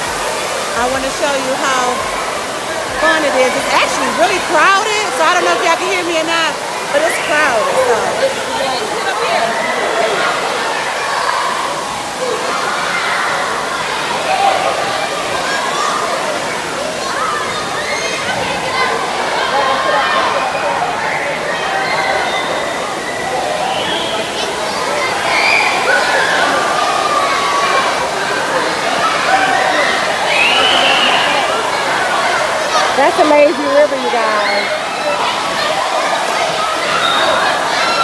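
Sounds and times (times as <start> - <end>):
many overlapping voices: 0.0 - 38.0
pool water rushing and splashing: 0.0 - 38.0
children shouting: 1.5 - 38.0.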